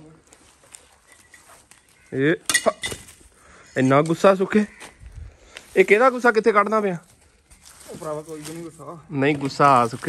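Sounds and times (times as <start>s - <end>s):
sickle hacking dry stalks: 4.7s - 10.0s.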